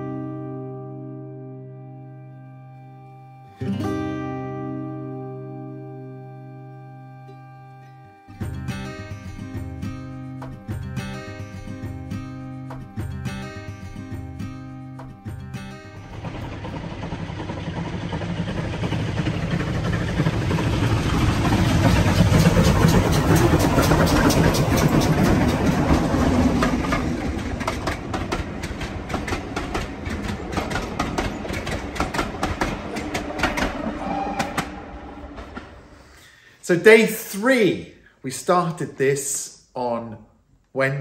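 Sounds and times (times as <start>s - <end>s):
train rumble: 14.0s - 36.4s
wheels clickety-clack over rail joints: 16.0s - 36.0s.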